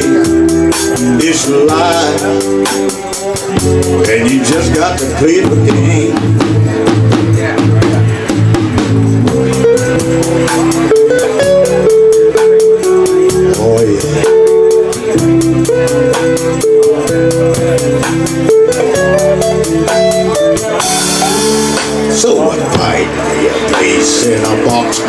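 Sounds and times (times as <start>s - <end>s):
drum kit beat: 0.0s - 25.0s
electric guitar lead line: 0.0s - 25.0s.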